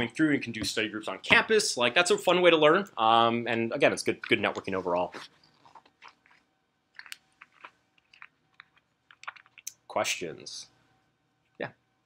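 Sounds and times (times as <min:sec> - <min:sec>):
faint steady hum: 0:00.0 - 0:12.0
faint clicks and rustles: 0:04.2 - 0:09.7.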